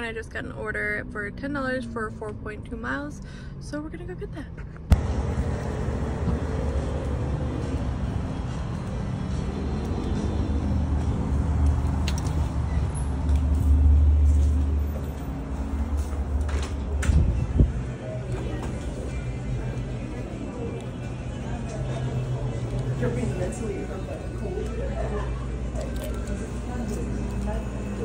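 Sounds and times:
faint background music: 0:00.0 - 0:04.6, 0:17.0 - 0:28.0
low outdoor rumble: 0:00.0 - 0:28.0
indoor restaurant room sound: 0:05.1 - 0:28.0.

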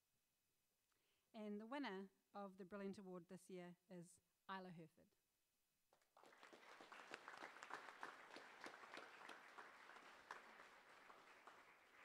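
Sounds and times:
audience applauding: 0:06.1 - 0:12.0.

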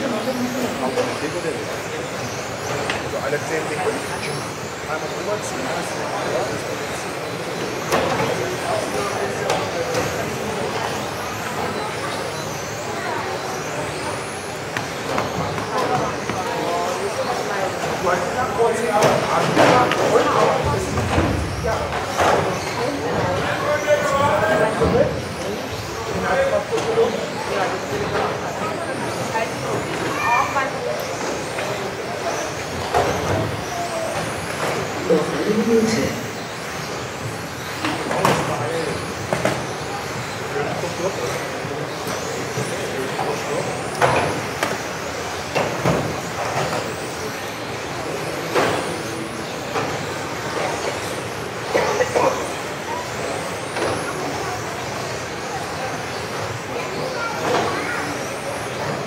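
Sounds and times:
rc car motors whining: 0:00.0 - 0:59.0.

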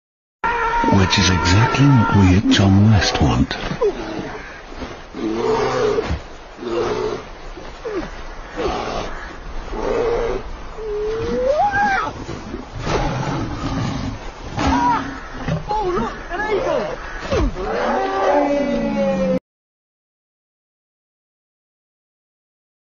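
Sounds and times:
bear howling: 0:00.4 - 0:02.9, 0:05.2 - 0:19.4
roaring cries: 0:00.4 - 0:19.4.

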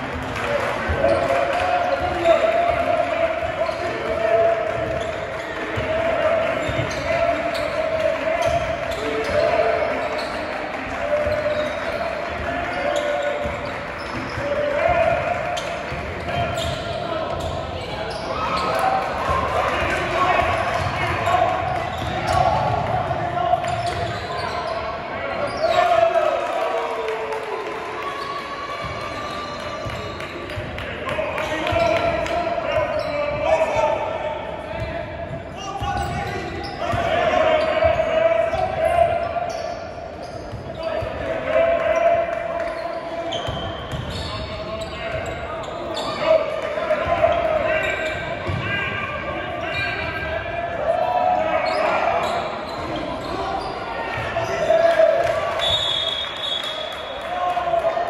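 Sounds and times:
people shouting and chattering: 0:00.0 - 0:58.0
ball bouncing on hardwood court: 0:43.4 - 0:44.2, 0:48.4 - 0:48.7.

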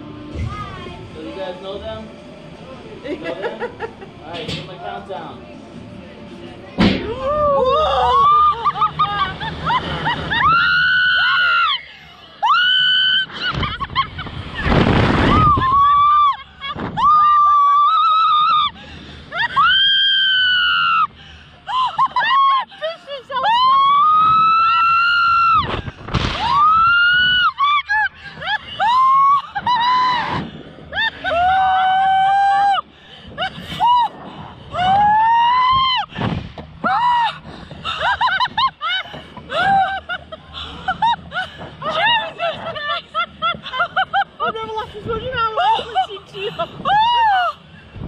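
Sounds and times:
women screaming: 0:07.1 - 0:14.0, 0:15.3 - 0:21.1, 0:21.7 - 0:25.8, 0:26.4 - 0:36.1, 0:36.8 - 0:40.2, 0:45.6 - 0:47.7.

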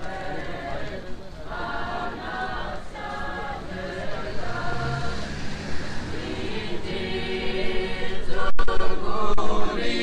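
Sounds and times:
crowd singing a chant: 0:00.0 - 0:10.0.

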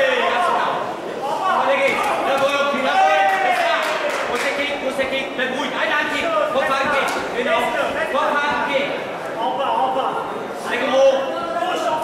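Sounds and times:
men shouting: 0:00.0 - 0:04.3.

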